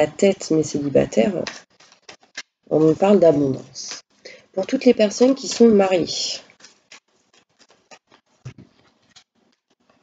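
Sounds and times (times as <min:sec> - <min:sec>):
cards handled and laid on table: 0:01.4 - 0:02.6, 0:06.5 - 0:10.0.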